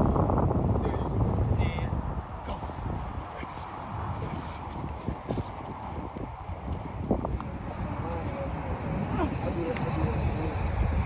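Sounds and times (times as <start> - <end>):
wind rumble on microphone: 0.0 - 11.0
quick footsteps on a field: 2.2 - 9.8.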